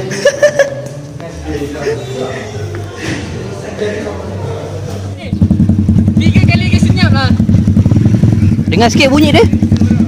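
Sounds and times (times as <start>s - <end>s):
motorcycle engine idling: 5.0s - 10.0s.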